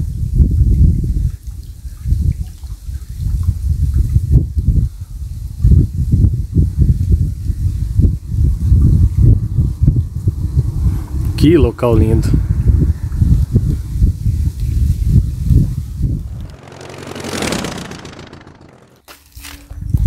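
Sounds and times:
wind buffeting microphone: 0:00.0 - 0:18.9.

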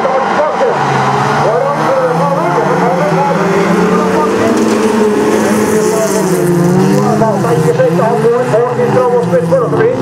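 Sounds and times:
racing car engines: 0:00.0 - 0:10.0.

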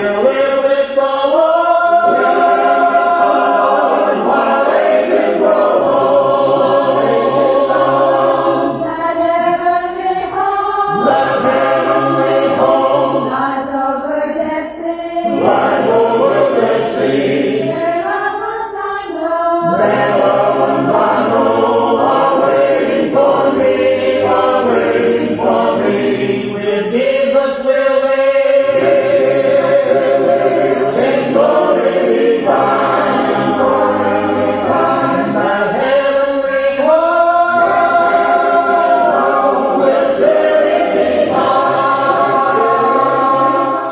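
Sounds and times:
choir singing a cappella: 0:00.0 - 0:43.9.

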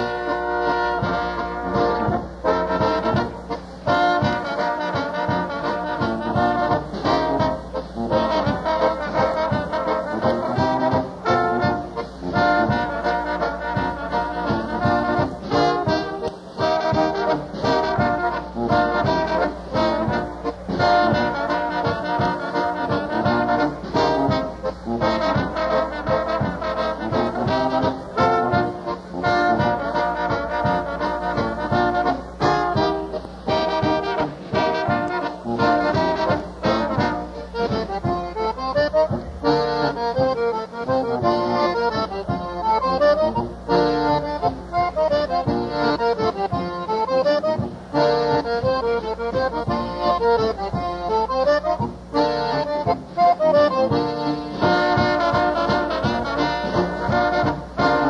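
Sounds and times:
polka band playing: 0:00.0 - 0:58.0
trombone and brass tune: 0:00.0 - 0:58.0.

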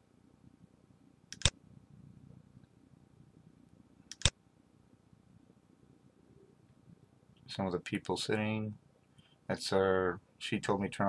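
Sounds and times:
faint low room hum: 0:00.0 - 0:11.0
computer mouse clicks: 0:01.3 - 0:01.6, 0:04.1 - 0:04.4.

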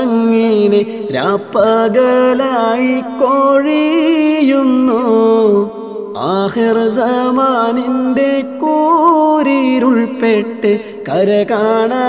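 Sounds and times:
man singing devotional song: 0:00.0 - 0:12.0.

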